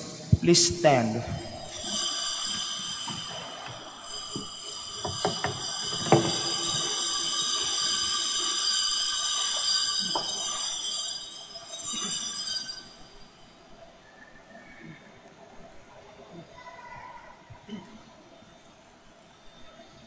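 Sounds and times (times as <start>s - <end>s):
bell ringing: 1.5s - 13.3s
sharp knocks: 3.1s - 6.9s.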